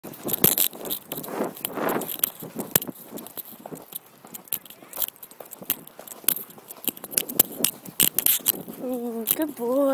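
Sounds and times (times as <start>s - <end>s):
horse cantering clicks and knocks: 0.0s - 9.9s.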